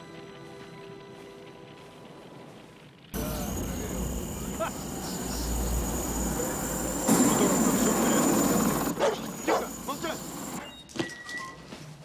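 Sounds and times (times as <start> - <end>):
dense wash of noise: 3.2 - 9.0
dog barking: 9.0 - 9.8.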